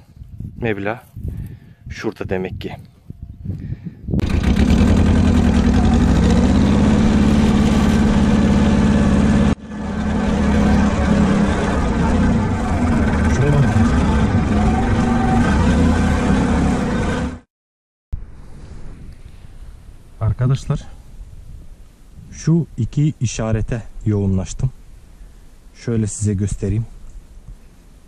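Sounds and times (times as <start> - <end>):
tractor engine running: 4.2 - 17.4.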